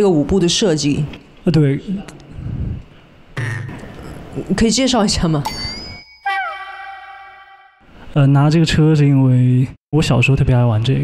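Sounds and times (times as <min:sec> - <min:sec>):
ringing chime tone sliding down: 0:05.5 - 0:07.8.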